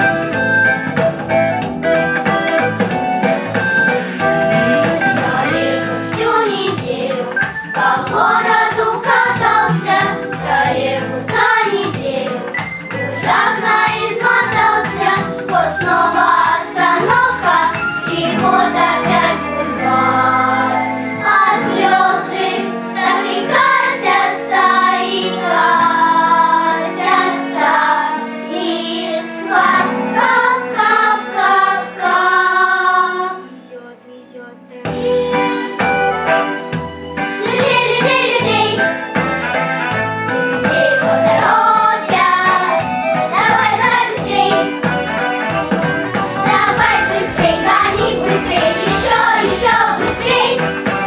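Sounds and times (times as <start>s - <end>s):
instrumental backing: 0.0s - 51.0s
girls choir singing: 4.7s - 12.5s, 13.1s - 33.4s, 37.4s - 38.9s, 40.6s - 45.0s, 46.2s - 51.0s.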